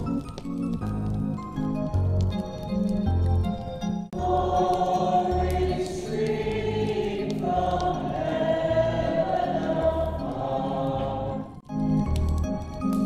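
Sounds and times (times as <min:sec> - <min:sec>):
choir singing a hymn: 0:04.2 - 0:11.6.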